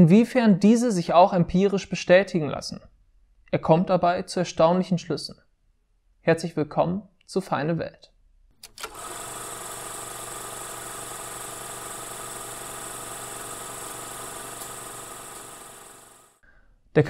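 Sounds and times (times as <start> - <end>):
film projector whirring: 8.6 - 16.4
projector switch click: 14.4 - 15.5.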